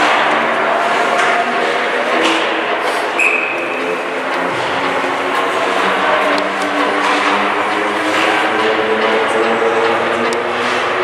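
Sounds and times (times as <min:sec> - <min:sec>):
skates scraping ice: 0:00.0 - 0:11.0
hockey stick clicks: 0:01.1 - 0:11.0.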